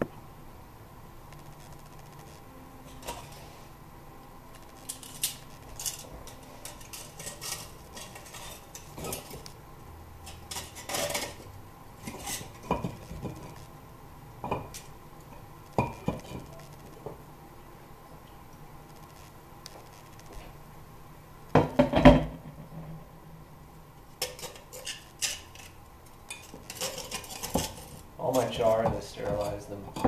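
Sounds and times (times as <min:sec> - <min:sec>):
stoneware scraping: 0:04.8 - 0:09.5, 0:10.2 - 0:13.6, 0:24.2 - 0:30.0.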